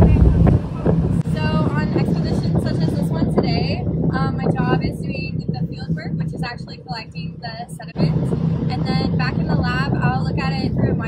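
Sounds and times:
ship engine drone: 0.0s - 11.0s
wind gusting on microphone: 0.0s - 11.0s
woman speaking: 1.2s - 11.0s.

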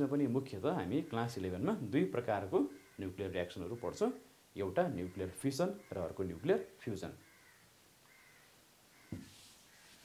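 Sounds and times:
knock: 9.1s - 9.3s
duster wiping whiteboard: 9.2s - 10.0s.

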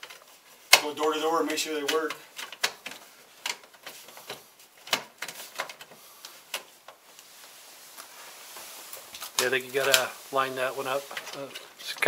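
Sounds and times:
plastic clicks and knocks: 1.9s - 7.0s.

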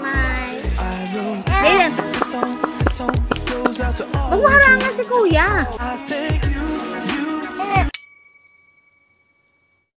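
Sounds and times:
bell-like chime: 8.0s - 9.9s.

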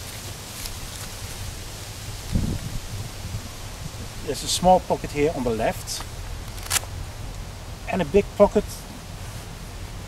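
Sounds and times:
wind rumble on microphone: 0.0s - 5.5s.

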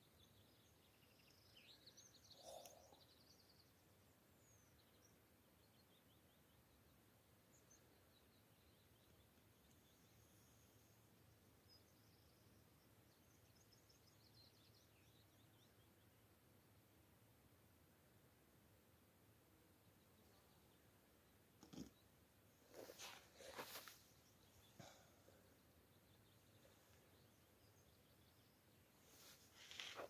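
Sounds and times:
faint distant bird song: 0.0s - 30.0s.

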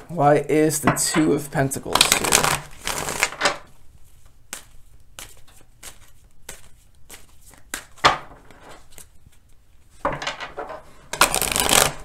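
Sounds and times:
cards being shuffled: 1.9s - 9.6s, 11.1s - 12.0s.

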